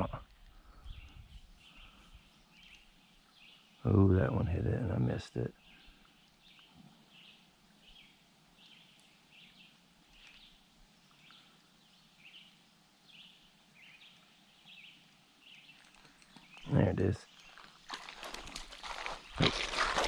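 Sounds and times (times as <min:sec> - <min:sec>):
faint bird chirps: 0:00.0 - 0:04.4, 0:05.5 - 0:17.7.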